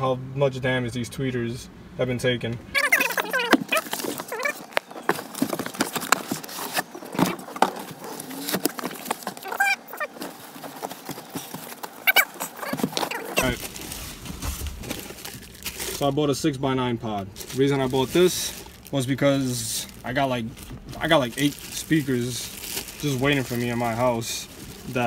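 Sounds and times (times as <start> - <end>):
cardboard and plastic rustling: 2.8 - 25.0.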